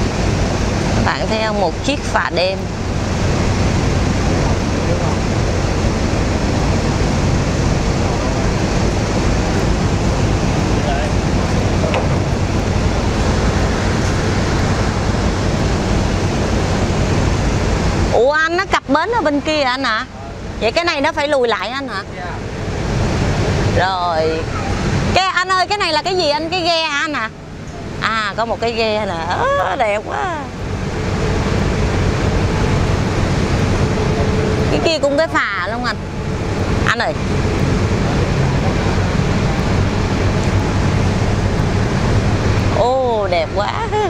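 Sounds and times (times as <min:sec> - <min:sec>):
ferry engine humming: 0:00.0 - 0:44.0
wind and water rushing: 0:00.0 - 0:44.0.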